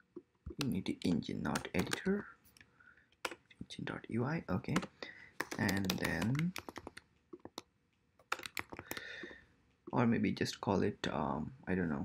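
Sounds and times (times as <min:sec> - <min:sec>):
typing on computer keyboard: 0:01.5 - 0:02.2, 0:04.7 - 0:07.6, 0:08.2 - 0:09.4.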